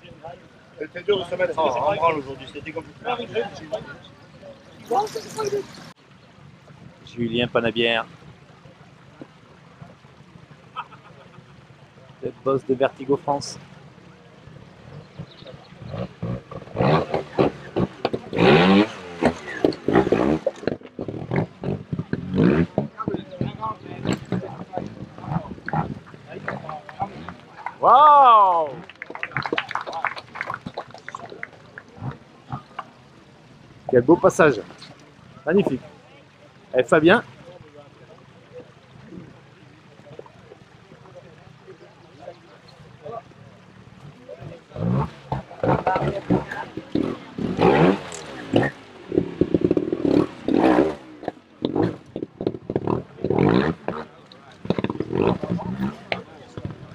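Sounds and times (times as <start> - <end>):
motorcycle engine revving: 1.0 - 56.9
faint background chatter: 13.6 - 56.9.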